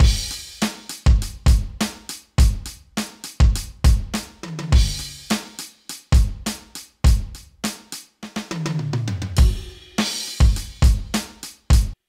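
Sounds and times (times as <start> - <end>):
electronic drum beat: 0.0 - 12.0.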